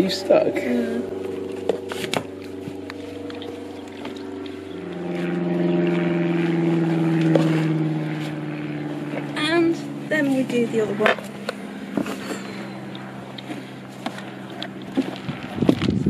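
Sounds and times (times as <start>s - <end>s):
low engine hum: 0.0s - 16.0s.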